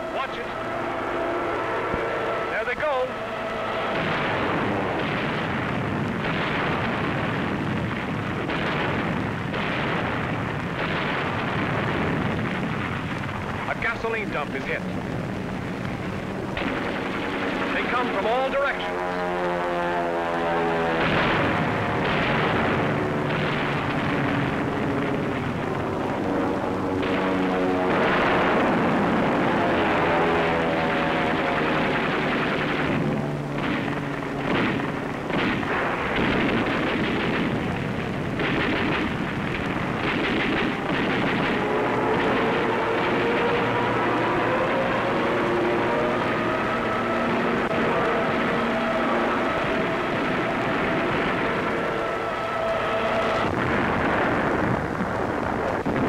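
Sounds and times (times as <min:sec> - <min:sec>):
propeller aircraft engines: 0:00.0 - 0:56.0
gunfire and bangs: 0:03.7 - 0:18.8, 0:20.7 - 0:56.0.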